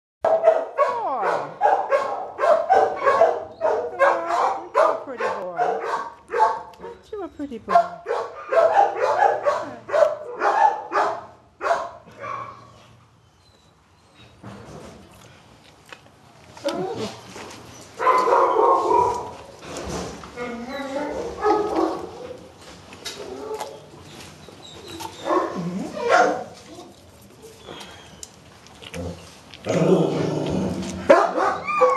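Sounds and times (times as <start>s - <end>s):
dogs barking: 0.2s - 7.0s, 7.7s - 12.7s, 18.0s - 19.5s, 21.3s - 22.5s, 25.2s - 26.6s, 31.0s - 31.9s
dog whining: 16.6s - 19.3s, 23.2s - 28.4s, 31.4s - 31.9s.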